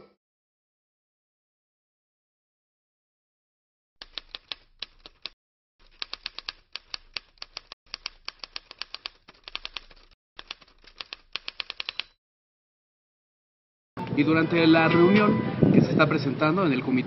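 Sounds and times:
typewriter keystroke clicks: 4.0s - 12.2s.

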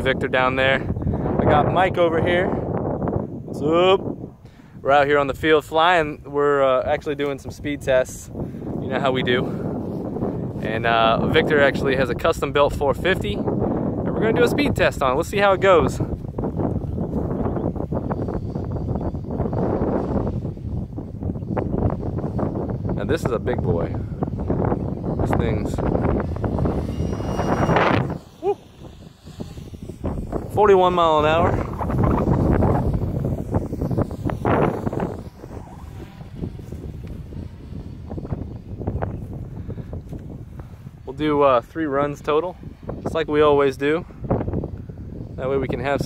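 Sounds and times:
quadcopter buzzing overhead: 0.0s - 46.0s
wind buffeting microphone: 0.0s - 46.0s.

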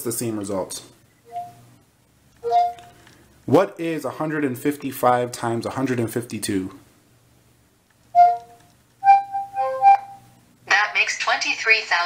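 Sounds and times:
electronic chime tones: 1.3s - 1.6s.

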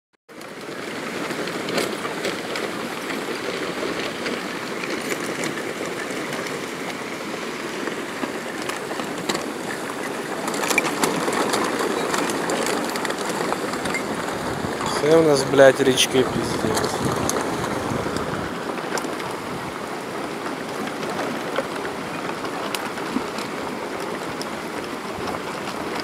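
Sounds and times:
river water rushing: 0.4s - 26.0s.

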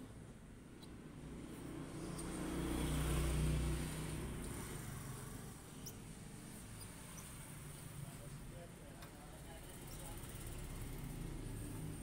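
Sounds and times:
vehicle engine passing by: 1.4s - 5.6s.

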